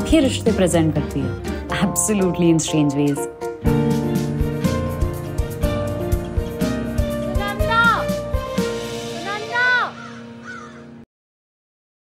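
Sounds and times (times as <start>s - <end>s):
closing music: 0.0s - 11.0s
falling pitched call: 9.2s - 11.0s.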